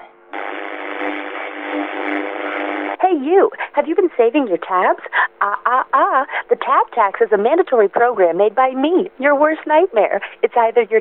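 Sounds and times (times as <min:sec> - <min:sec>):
radio static hiss: 0:00.0 - 0:03.8
faint steady tones: 0:00.0 - 0:10.8.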